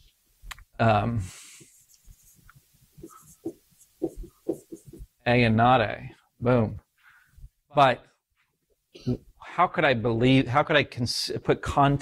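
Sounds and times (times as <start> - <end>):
marker writing on whiteboard: 3.0 - 5.1.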